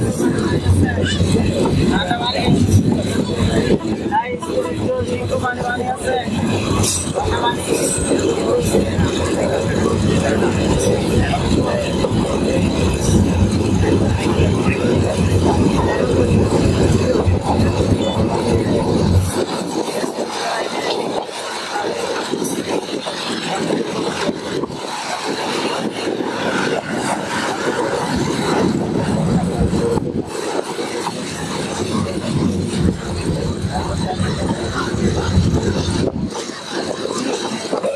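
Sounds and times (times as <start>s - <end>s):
train carriage rattle and rumble: 0.0s - 37.9s.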